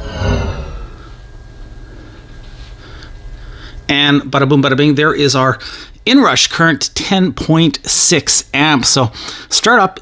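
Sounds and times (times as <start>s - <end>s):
deep thump with falling whine: 0.0s - 1.8s
faint steady hum: 0.0s - 10.0s.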